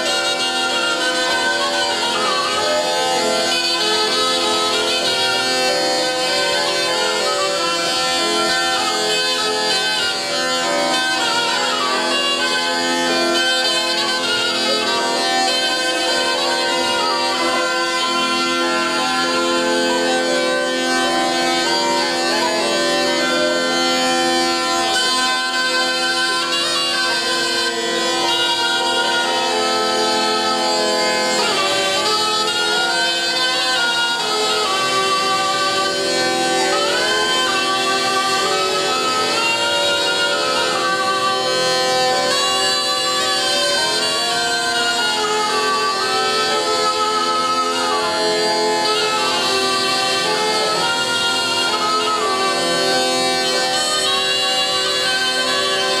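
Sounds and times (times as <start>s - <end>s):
bagpipe drones: 0.0s - 56.0s
reed shawm melody: 0.0s - 56.0s.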